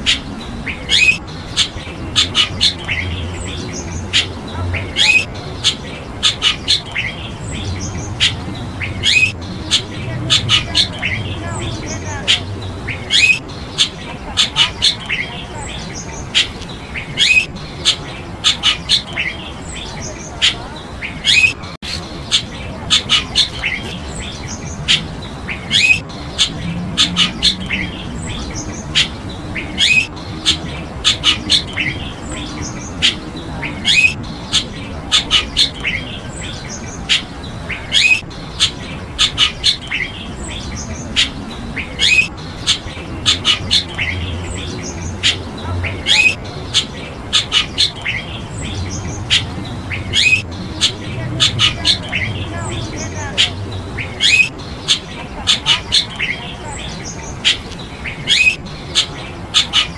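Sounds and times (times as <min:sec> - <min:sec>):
birds chirping: 0:00.0 - 0:59.9.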